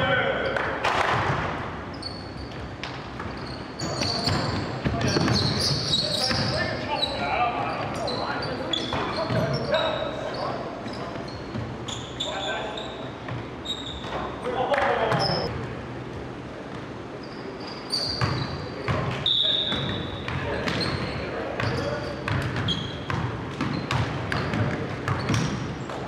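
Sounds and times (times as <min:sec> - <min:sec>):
sneakers squeaking: 0:00.1 - 0:26.0
players calling out: 0:14.3 - 0:15.5
basketball bouncing: 0:21.6 - 0:26.0.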